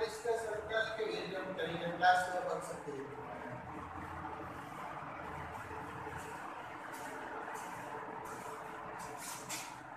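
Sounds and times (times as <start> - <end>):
steady background noise: 0.0 - 9.9.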